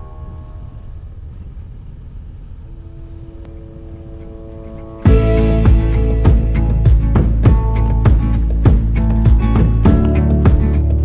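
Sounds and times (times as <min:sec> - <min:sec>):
motorcycle engine rumble: 0:00.9 - 0:11.0
faint music: 0:02.5 - 0:11.0.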